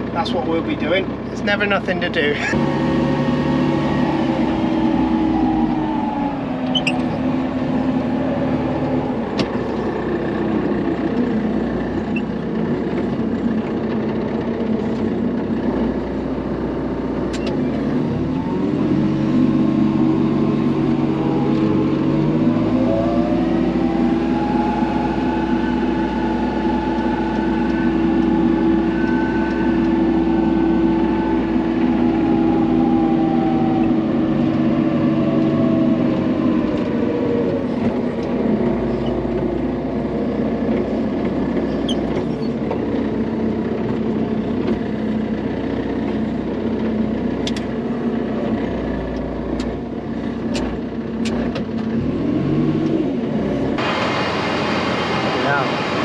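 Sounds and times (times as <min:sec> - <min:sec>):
diesel engine running: 0:00.0 - 0:56.0
high rising whine: 0:02.4 - 0:11.2, 0:17.8 - 0:40.4.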